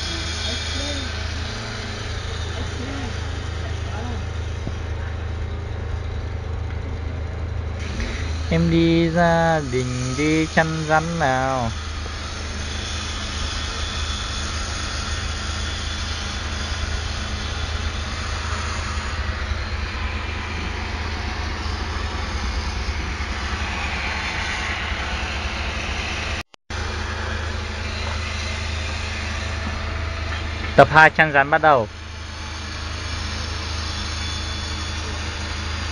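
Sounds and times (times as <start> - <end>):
low outdoor rumble: 0.0 - 30.9.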